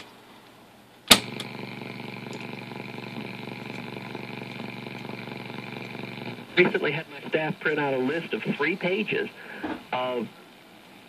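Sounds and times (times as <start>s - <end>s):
radio static hiss: 1.1s - 10.5s
low hum: 1.2s - 8.6s.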